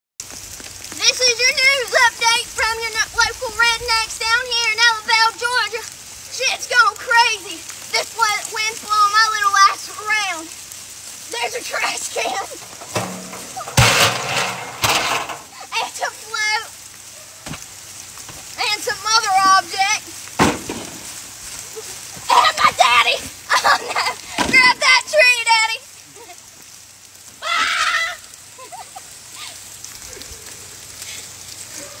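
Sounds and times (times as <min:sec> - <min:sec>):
rain hissing: 0:00.2 - 0:32.0
woman crying and laughing: 0:23.4 - 0:24.3, 0:28.5 - 0:30.3.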